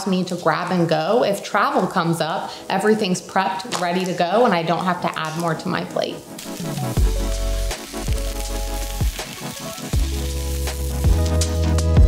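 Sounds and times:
food sizzling in a frying pan: 0:01.1 - 0:12.0
music with deep bass and drums: 0:06.6 - 0:12.0.

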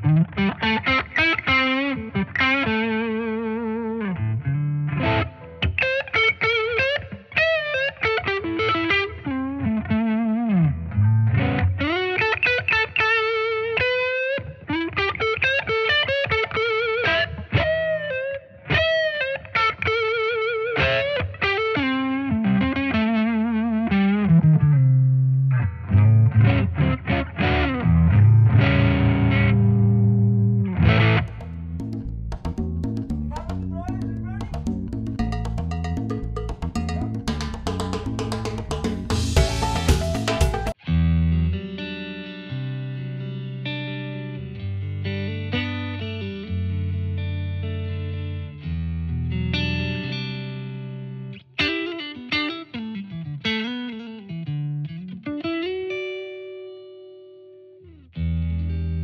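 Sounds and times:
distorted guitar chords: 0:00.0 - 0:06.8, 0:22.2 - 0:51.8
distorted electric guitar lead: 0:00.0 - 0:19.5, 0:20.4 - 0:51.9.

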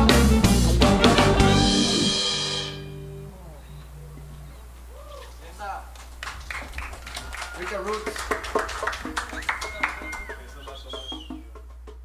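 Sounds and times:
reggae band final chord: 0:00.0 - 0:04.7
low bass note: 0:00.0 - 0:04.8
amplifier hum: 0:00.0 - 0:11.6
cymbals washing: 0:00.2 - 0:05.6
faint voices: 0:03.1 - 0:11.4.

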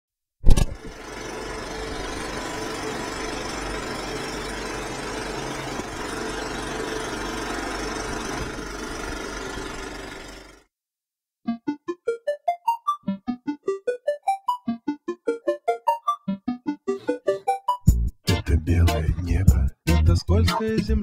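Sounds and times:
loud click: 0:00.4 - 0:00.9
small machine clattering: 0:00.6 - 0:10.7.

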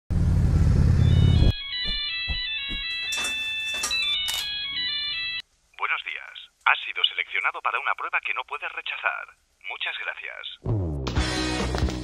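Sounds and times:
motorcycle rumble: 0:00.1 - 0:01.5
mobile phone ringtone: 0:01.0 - 0:05.4
voice through telephone line: 0:05.8 - 0:10.6.

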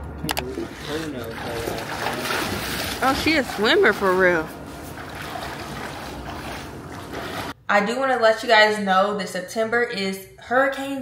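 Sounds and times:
water rushing: 0:00.4 - 0:07.6.

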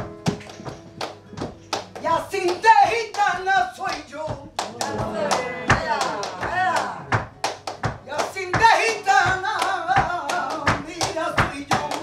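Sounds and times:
flamenco guitar: 0:00.0 - 0:12.0
rhythmic hand clapping: 0:00.0 - 0:12.0.

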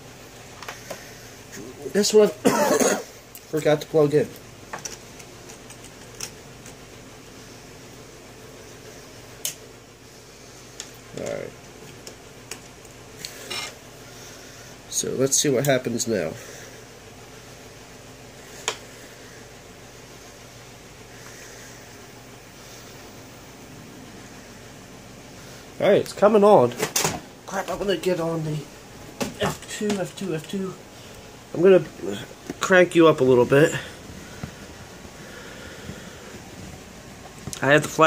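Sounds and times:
computer cooling fans humming: 0:00.0 - 0:38.0.

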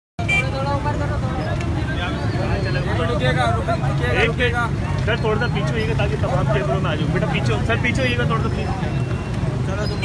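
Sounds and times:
voices talking: 0:00.2 - 0:10.0.

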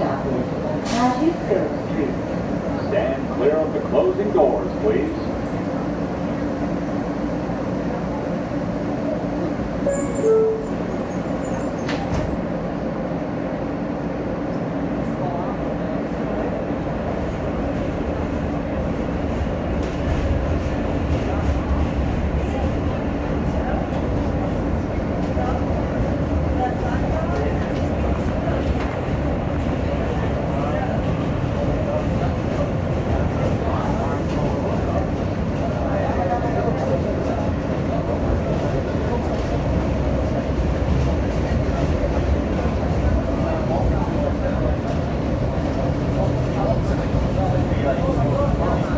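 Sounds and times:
subway train hum: 0:00.0 - 0:48.9
train motor and wheel rumble: 0:00.0 - 0:48.9.

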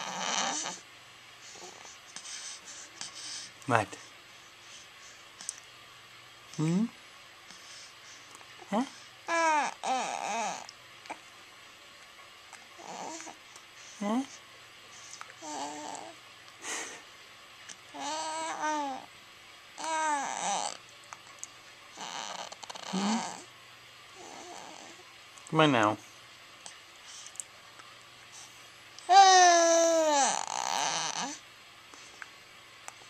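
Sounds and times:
baby grunting: 0:00.0 - 0:00.8, 0:09.3 - 0:10.7, 0:12.8 - 0:13.4, 0:15.4 - 0:16.2, 0:19.8 - 0:20.8, 0:22.0 - 0:23.5, 0:29.1 - 0:31.4.

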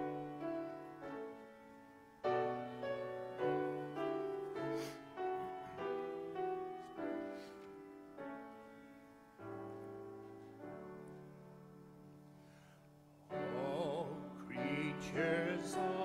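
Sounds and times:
piano chords: 0:00.0 - 0:16.0.

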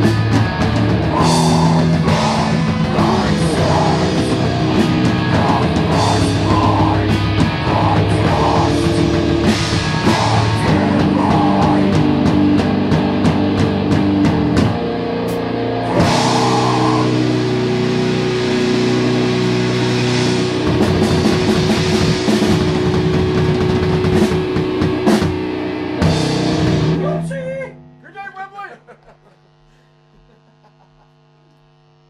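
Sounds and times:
distorted guitar chord ringing: 0:00.0 - 0:28.6
amplifier mains hum: 0:00.0 - 0:32.0.

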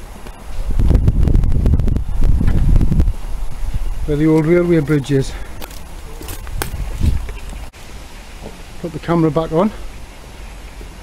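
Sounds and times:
wind rumble on microphone: 0:00.0 - 0:07.7.

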